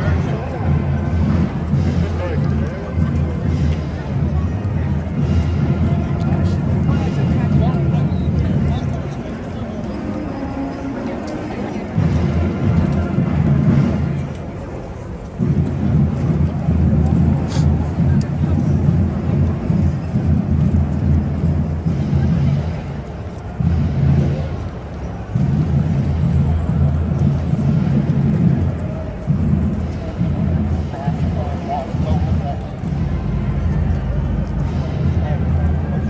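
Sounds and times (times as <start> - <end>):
faint street noise: 0.0 - 36.0.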